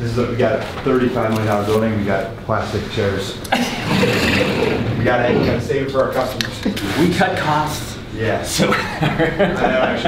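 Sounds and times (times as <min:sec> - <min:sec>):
men talking: 0:00.0 - 0:10.0.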